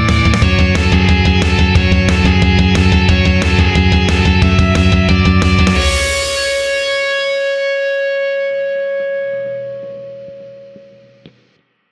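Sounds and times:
distorted electric guitar chord ringing: 0.0s - 11.6s.

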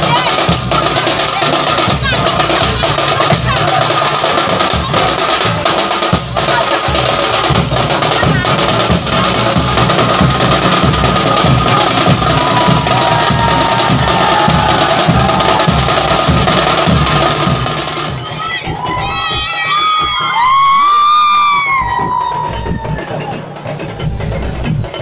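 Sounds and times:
crowd cheering and shouting: 0.0s - 5.7s, 6.4s - 25.0s
large barrel drums beating: 0.0s - 25.0s
high-pitched shouts: 11.7s - 16.6s, 18.2s - 23.6s
long loud cry: 12.3s - 16.2s, 18.7s - 23.4s.

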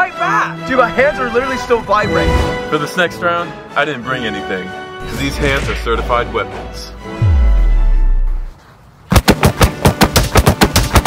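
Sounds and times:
fists punching rubber dummy: 9.1s - 11.0s.

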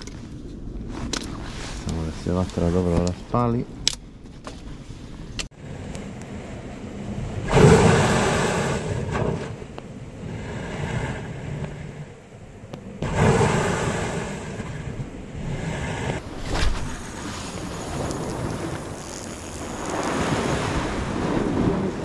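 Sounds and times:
sea waves washing into rocks: 5.6s - 22.0s.

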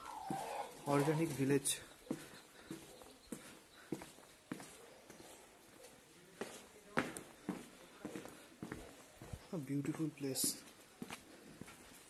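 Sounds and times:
footsteps walking: 0.0s - 12.0s.

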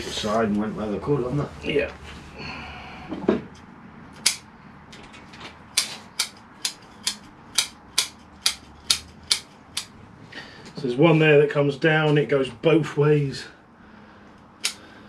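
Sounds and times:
scissors snipping roots: 14.6s - 14.8s.

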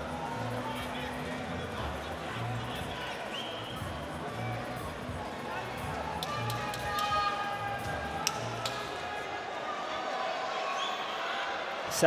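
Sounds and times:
crowd chatter: 0.0s - 12.0s
sharp claps or knocks: 7.8s - 9.0s.

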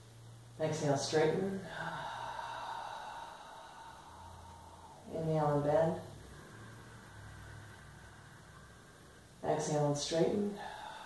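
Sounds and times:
faint hiss: 0.0s - 11.0s
faint low hum: 0.0s - 11.0s.

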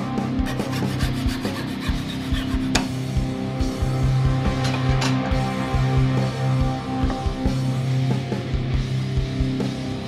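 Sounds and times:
background music with steady beat: 0.0s - 10.0s
hacksaw rasping through wood: 0.4s - 3.0s.

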